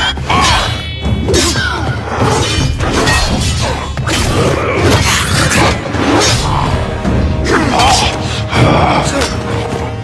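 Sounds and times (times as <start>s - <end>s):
film music: 0.0s - 10.0s.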